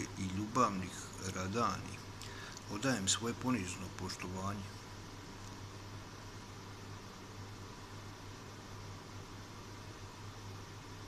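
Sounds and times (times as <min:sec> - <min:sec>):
background hiss: 0:00.0 - 0:11.0
low even hum: 0:00.0 - 0:11.0.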